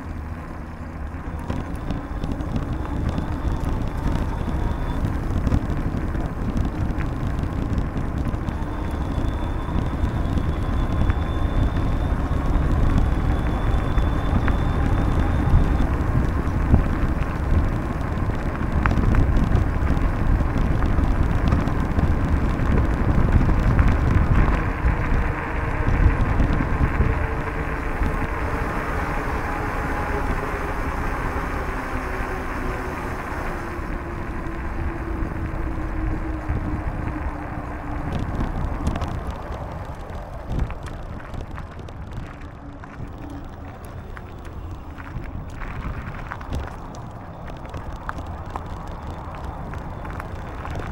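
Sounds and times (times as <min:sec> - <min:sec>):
bicycle tyres rolling on asphalt: 0:00.0 - 0:50.9
wind rumble on microphone: 0:00.0 - 0:50.9.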